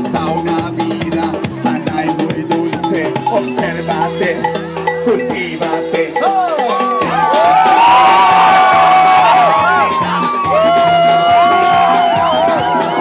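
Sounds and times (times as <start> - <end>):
live band playing loudly: 0.0 - 13.0
crowd whooping and cheering: 6.2 - 13.0.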